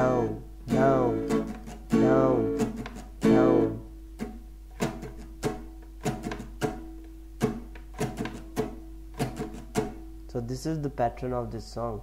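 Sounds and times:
acoustic guitar strumming: 0.0 - 10.8.

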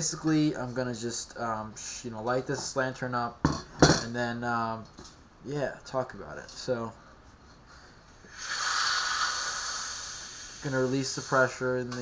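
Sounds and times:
pressurised air hissing: 8.2 - 11.8.

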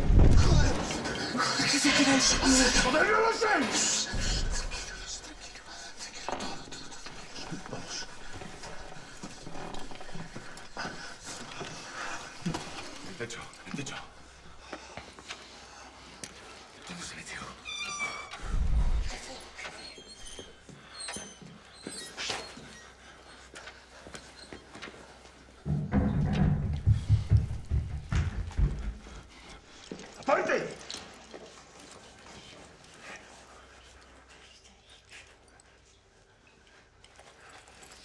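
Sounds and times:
deep low rumble with thudding: 26.0 - 29.1.

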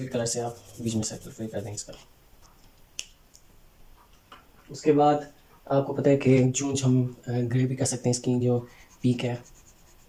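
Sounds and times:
low room noise: 0.0 - 10.0.

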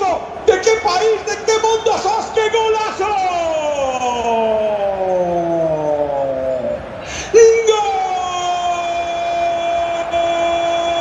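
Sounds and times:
commentator's long goal shout: 6.5 - 11.0.

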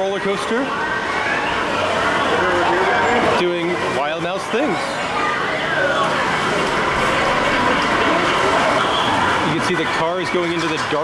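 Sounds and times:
rushing din of exhibit hall: 0.0 - 11.0.

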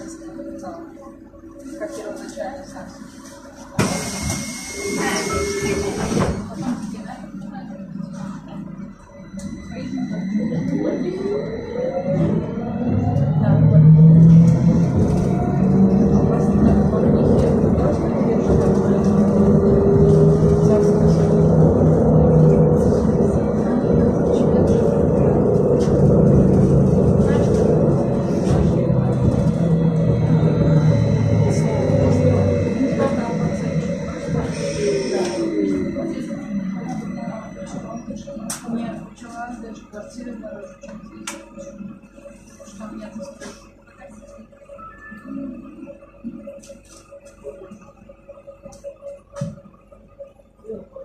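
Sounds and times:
steady high whine: 0.0 - 51.0
trolleybus cabin rumble: 0.0 - 51.0
loud rushing noise: 13.4 - 38.0.

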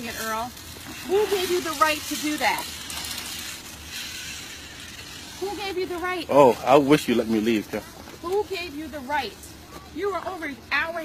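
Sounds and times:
faint outdoor background hiss: 0.0 - 11.0.

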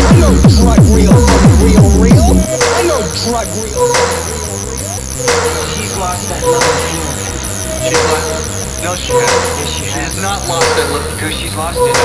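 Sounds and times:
high falling electronic chirps: 0.0 - 11.1
low bass drone: 0.0 - 11.9.

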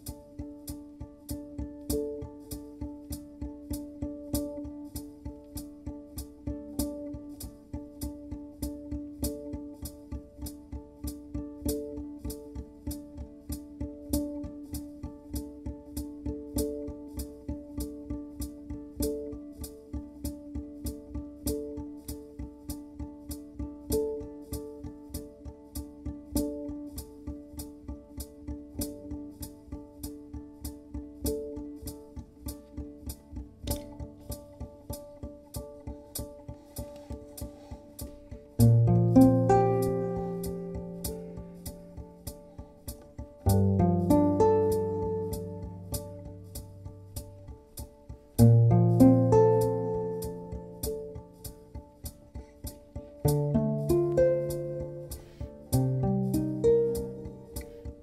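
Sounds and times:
low sustained tone: 0.0 - 58.0
plucked string notes: 0.0 - 58.0.

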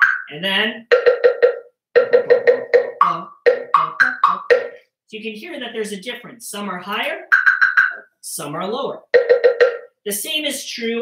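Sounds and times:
wooden blocks struck with sticks: 0.0 - 4.8, 7.3 - 8.0, 9.1 - 10.0.

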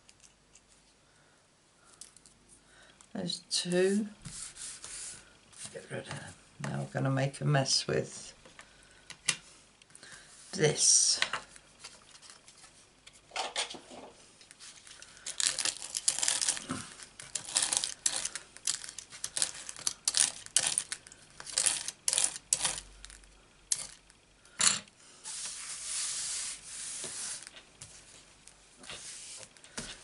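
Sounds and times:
bristle brush scrubbing cardstock: 4.3 - 5.2, 25.2 - 27.5.

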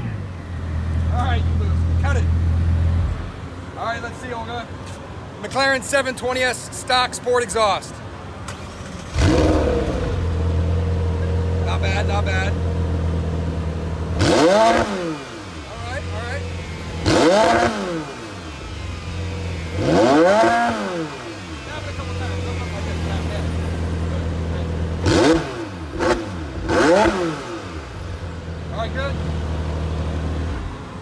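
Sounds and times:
car engine revving and idling: 0.0 - 6.5, 8.0 - 31.0.

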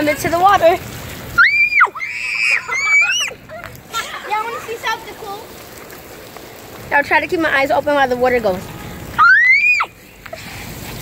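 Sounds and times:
fountain water spraying: 0.0 - 11.0
child's voice: 4.0 - 5.5.

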